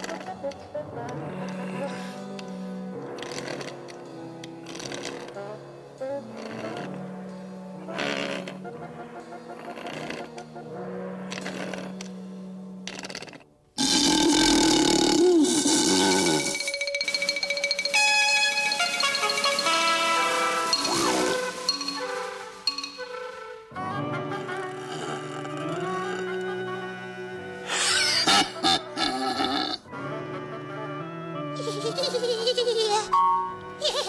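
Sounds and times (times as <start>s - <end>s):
background music: 0.0s - 34.0s
cartoon lion roar: 12.9s - 16.6s.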